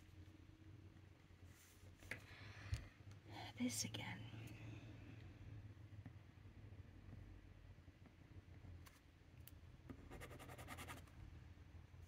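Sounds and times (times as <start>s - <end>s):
pen nib scratching on card: 9.9s - 11.1s.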